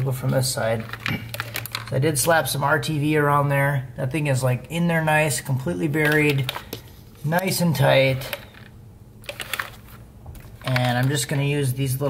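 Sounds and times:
person speaking: 0.0s - 8.7s, 10.5s - 12.0s.

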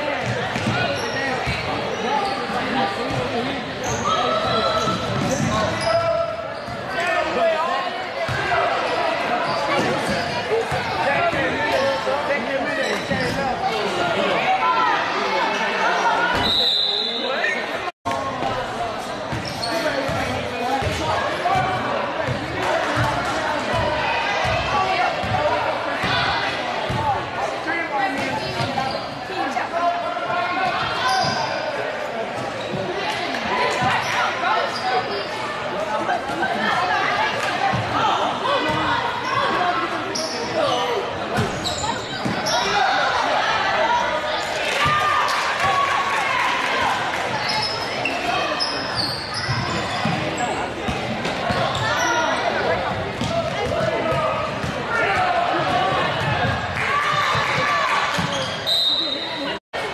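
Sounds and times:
sneakers squeaking: 0.1s - 7.3s, 8.2s - 14.0s, 18.4s - 27.2s, 28.0s - 35.6s, 36.2s - 42.9s, 47.3s - 59.6s.

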